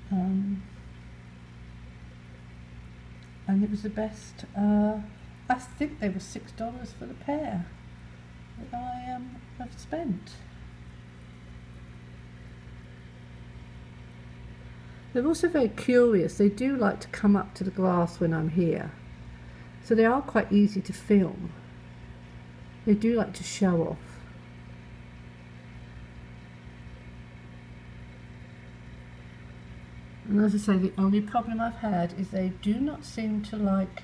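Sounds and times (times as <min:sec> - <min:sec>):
aquarium equipment humming: 0:00.0 - 0:34.0.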